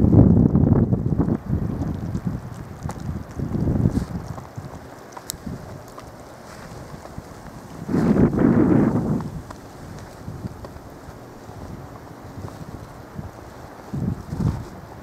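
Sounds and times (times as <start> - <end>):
low steady outdoor rush: 0.0 - 15.0
wind buffeting microphone: 0.0 - 15.0.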